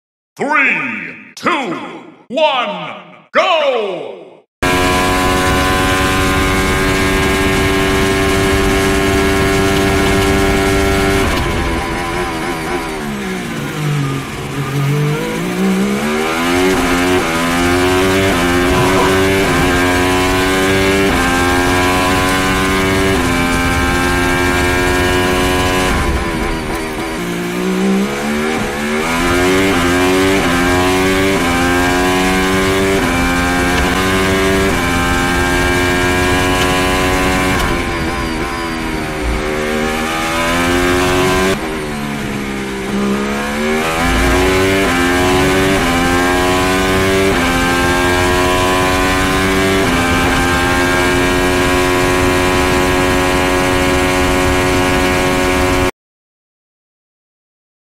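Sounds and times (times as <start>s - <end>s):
racing car engine at full throttle: 4.6s - 55.9s.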